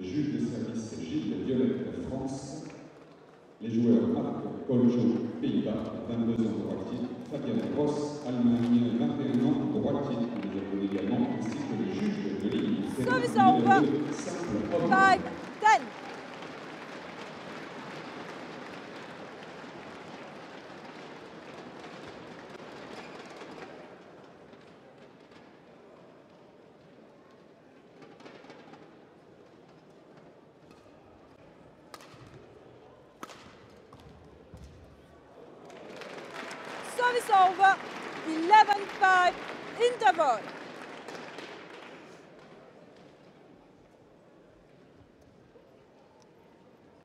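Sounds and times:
crowd voices in sports hall: 0.0s - 47.0s
players moving on court: 8.6s - 25.6s, 35.9s - 43.2s
racket striking shuttlecock: 33.2s - 33.6s.

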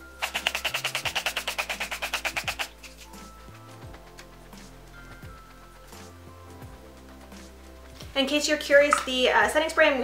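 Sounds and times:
spray bottle misting: 0.0s - 6.4s.

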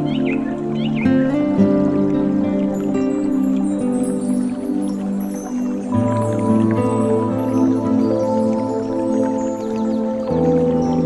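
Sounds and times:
slow ambient sleep music: 0.0s - 11.0s
water drips: 0.0s - 11.0s.

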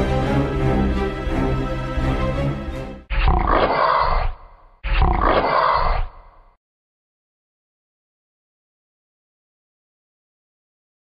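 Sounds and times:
big cat roar: 3.1s - 6.4s.

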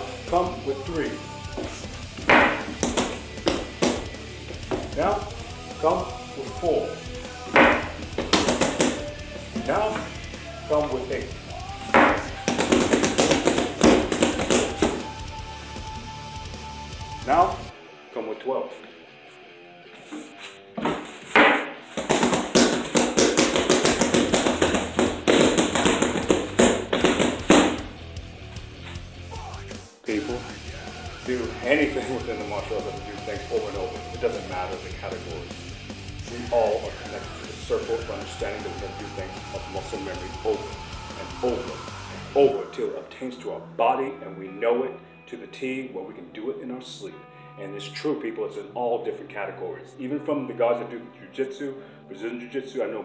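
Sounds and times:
faint music: 0.0s - 53.0s
hand strikes on wood: 2.2s - 4.9s, 7.5s - 10.1s, 11.9s - 15.1s, 20.0s - 27.9s.

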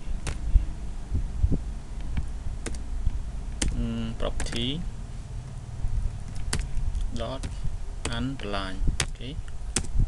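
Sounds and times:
steady low hum: 0.0s - 10.0s
soft low thumps: 0.2s - 3.8s
computer keyboard clicks: 2.6s - 2.8s, 4.4s - 4.7s.

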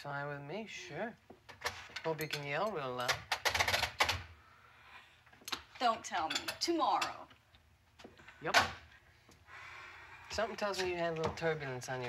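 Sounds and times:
telephone handset clicking and clattering: 3.0s - 4.3s.

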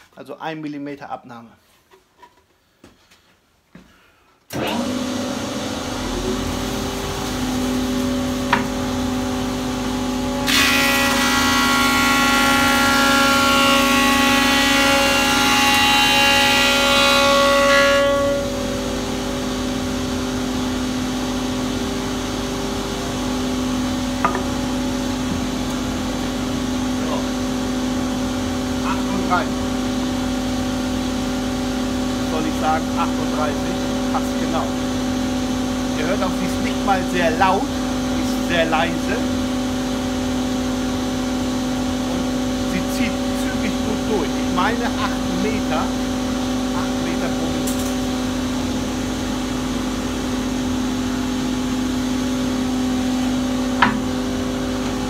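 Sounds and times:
planer motor humming: 4.5s - 17.3s.

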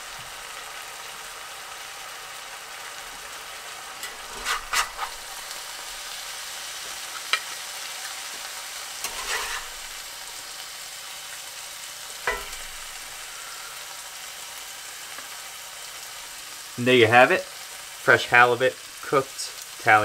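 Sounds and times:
stew sizzling in a skillet: 0.0s - 20.0s
spatula scraping and knocking pan: 4.0s - 5.4s, 9.0s - 10.1s, 12.2s - 13.2s.

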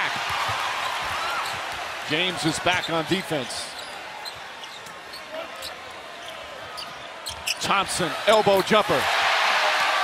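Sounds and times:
arena crowd noise: 0.0s - 10.0s
sneakers squeaking: 0.1s - 7.9s.

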